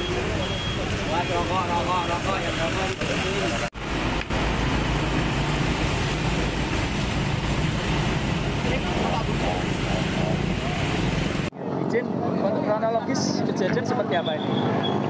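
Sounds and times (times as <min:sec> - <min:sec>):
low traffic rumble and hiss: 0:00.0 - 0:14.4.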